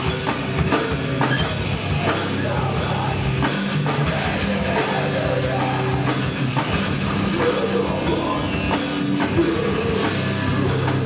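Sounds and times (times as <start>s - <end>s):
distorted electric guitars: 0.0s - 11.0s
fast drum-kit beats: 0.0s - 11.0s.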